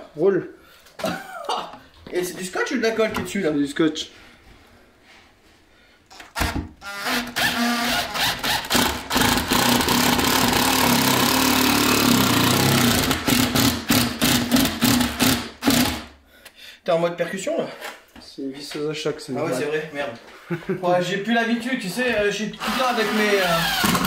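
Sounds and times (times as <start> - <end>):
drill rattling driving a screw: 6.1 - 16.1, 22.6 - 24.0.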